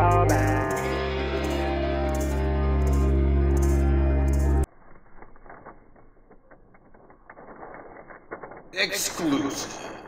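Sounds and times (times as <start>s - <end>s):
tissue paper crinkling: 4.8s - 8.8s.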